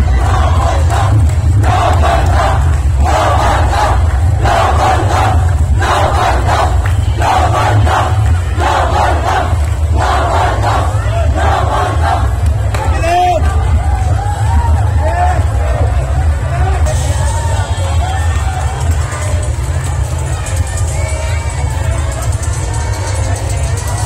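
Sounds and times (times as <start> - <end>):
crowd shouting a chant: 0.0 - 20.1
steady low rumble: 0.0 - 24.0.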